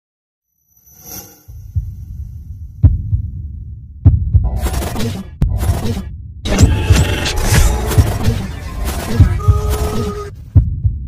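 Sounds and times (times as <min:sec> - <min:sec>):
deep throbbing low rumble: 0:01.5 - 0:11.0.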